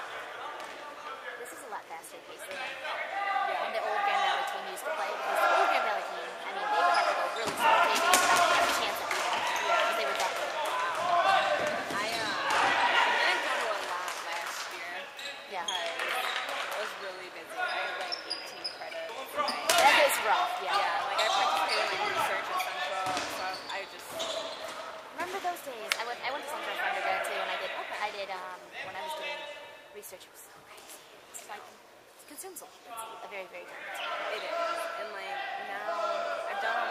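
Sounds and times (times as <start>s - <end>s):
dodgeballs hitting floor and players: 0.0s - 1.1s, 6.6s - 27.2s
voices calling: 1.4s - 29.8s.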